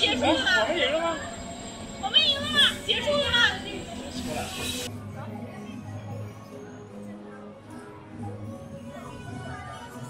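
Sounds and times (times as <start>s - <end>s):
people talking close by: 0.0s - 10.0s.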